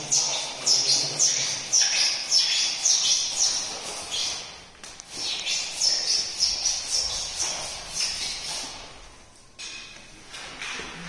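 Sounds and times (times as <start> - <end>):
bird chirping: 0.0 - 4.5, 5.2 - 7.4.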